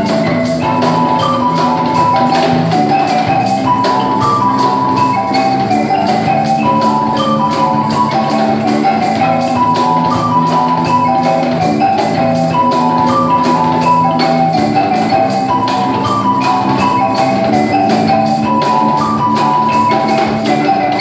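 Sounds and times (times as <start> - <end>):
cajon beat: 0.0 - 21.0
electric bass: 0.0 - 21.0
marimba melody: 0.0 - 21.0.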